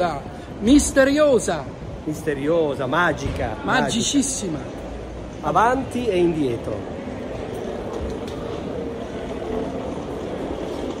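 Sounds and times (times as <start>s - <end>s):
busy city street rumble: 0.0s - 11.0s.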